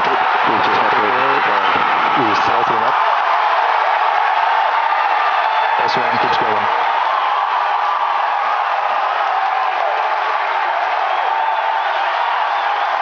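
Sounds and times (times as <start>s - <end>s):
man speaking: 0.0s - 3.0s, 5.8s - 6.7s
crowd cheering and whooping: 0.0s - 13.0s.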